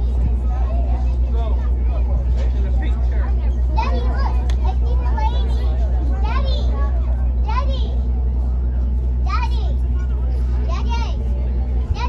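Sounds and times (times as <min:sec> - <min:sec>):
boat engine drone: 0:00.0 - 0:12.0
passengers calling out: 0:00.0 - 0:12.0.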